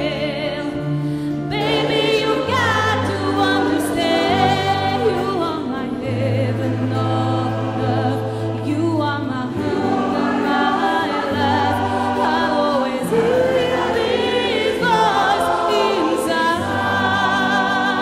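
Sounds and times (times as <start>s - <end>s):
choir singing: 0.0s - 18.0s
guitars and keyboard: 0.0s - 18.0s
woman singing ballad: 0.0s - 18.0s.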